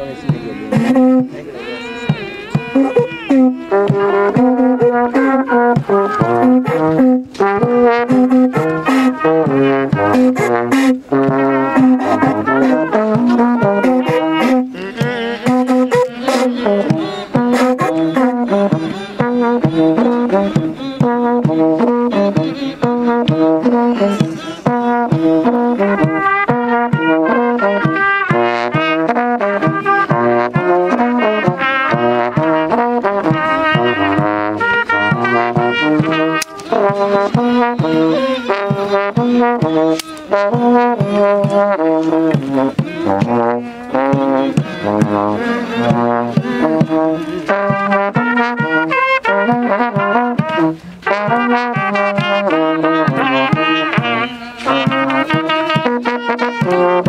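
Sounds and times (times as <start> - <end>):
percussion strikes: 0.0 - 26.6, 31.4 - 48.9
brass horns playing: 0.0 - 57.0.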